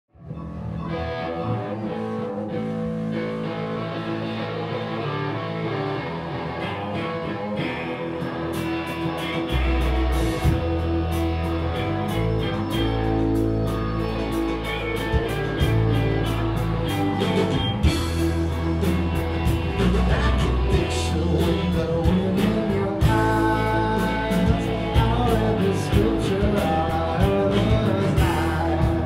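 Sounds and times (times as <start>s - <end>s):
deep bass guitar line: 0.1s - 29.0s
electric guitars: 0.1s - 29.0s.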